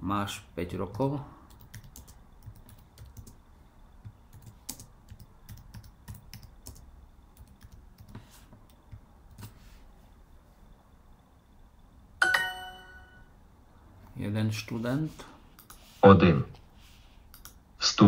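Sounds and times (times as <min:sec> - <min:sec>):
computer keyboard typing: 0:00.9 - 0:03.4, 0:04.0 - 0:09.6, 0:17.3 - 0:17.6.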